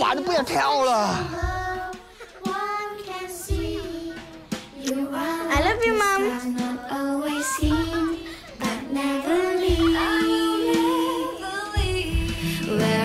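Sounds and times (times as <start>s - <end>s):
soft music: 0.0s - 13.0s
child singing slow melody: 1.2s - 5.6s, 6.2s - 13.0s.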